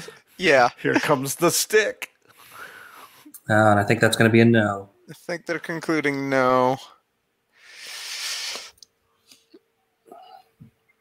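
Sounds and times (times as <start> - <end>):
hissing exhale into microphone: 7.6 - 8.8.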